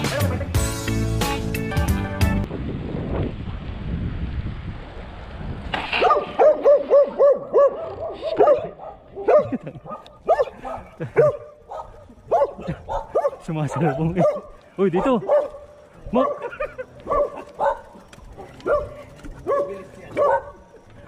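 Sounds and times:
dog barking: 6.0s - 20.7s.

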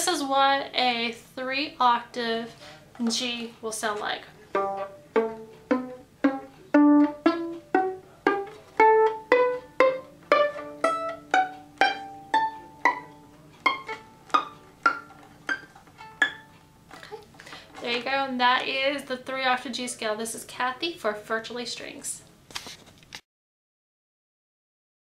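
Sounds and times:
violin playing a rising scale: 4.4s - 16.6s.

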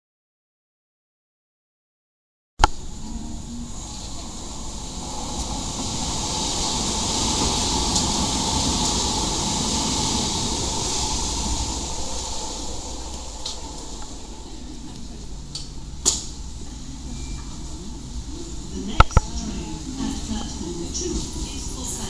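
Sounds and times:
faint steady whine: 2.6s - 22.0s
passenger train passing: 2.6s - 22.0s.

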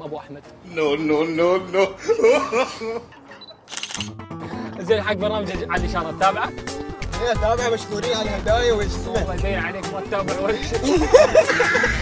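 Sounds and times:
camera shutter click: 3.6s - 4.2s.

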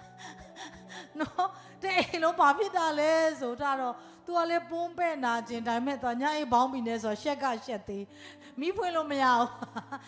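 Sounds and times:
woman breathing into microphone: 0.0s - 1.8s, 8.1s - 8.6s.

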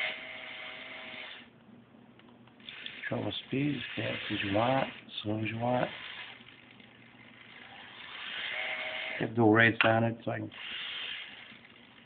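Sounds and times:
small electric motor whining: 0.0s - 1.5s, 5.8s - 9.3s, 10.5s - 12.0s.

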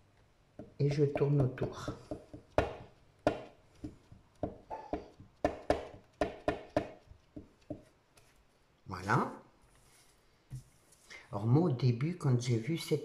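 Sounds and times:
stamp tapping on paper: 0.6s - 7.9s.

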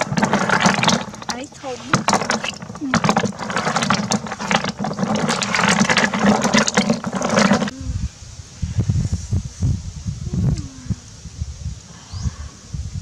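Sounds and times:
snail shells clattering in bucket: 0.0s - 7.7s
low uneven rumbles: 0.0s - 13.0s.

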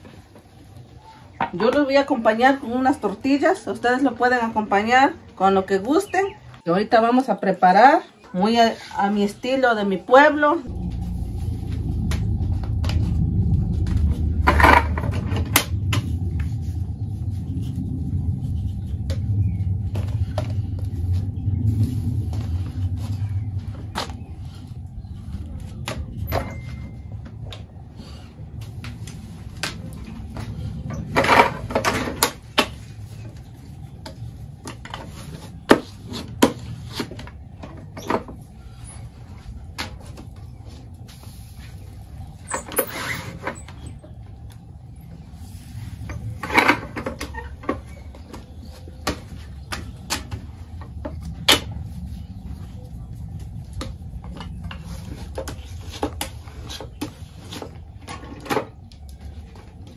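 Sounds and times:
steady low rumble: 8.5s - 59.9s.

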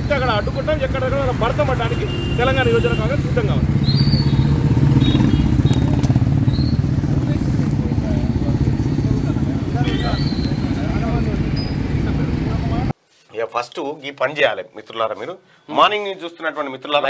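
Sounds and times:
vehicle engine rumbling: 0.0s - 12.9s.

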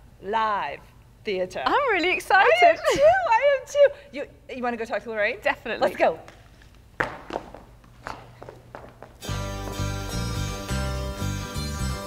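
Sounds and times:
low room hum: 0.0s - 11.5s
footsteps walking away: 6.2s - 10.4s.

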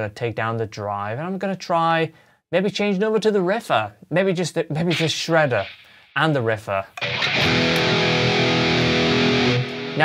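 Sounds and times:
distorted electric guitar chord: 7.0s - 10.0s.

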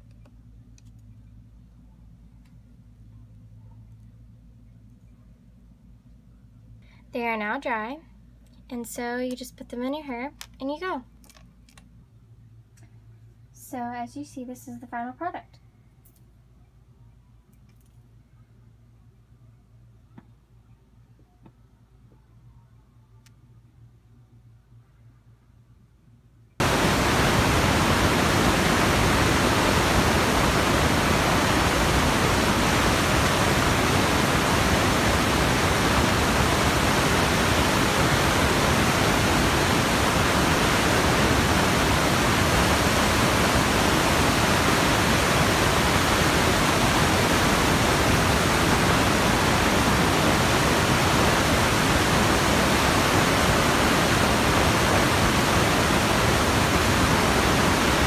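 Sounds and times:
steady static hiss: 0.0s - 58.0s.

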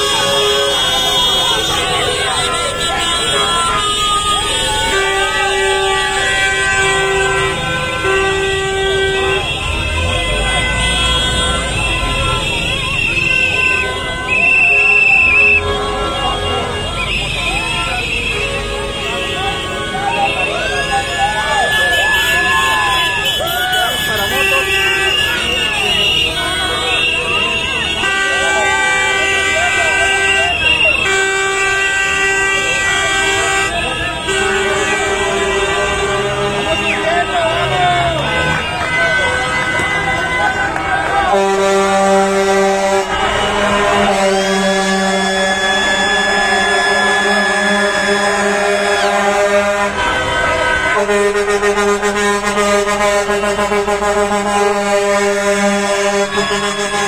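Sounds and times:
people calling out: 0.0s - 31.4s, 32.1s - 51.0s
horns honking: 0.0s - 57.0s.

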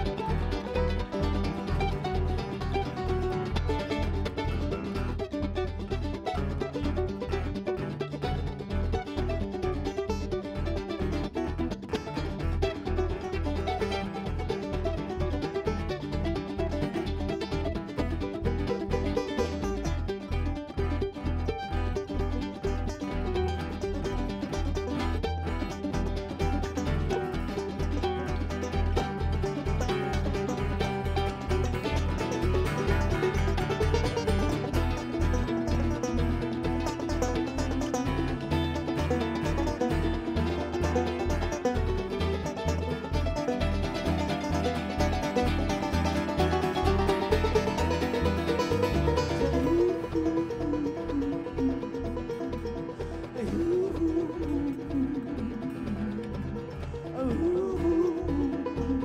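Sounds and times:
banjo picking: 0.0s - 59.0s
mandolin picking: 0.0s - 59.0s.

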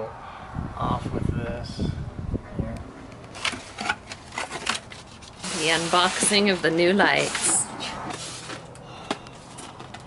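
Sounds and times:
styrofoam and cardboard rustling: 3.4s - 8.7s.

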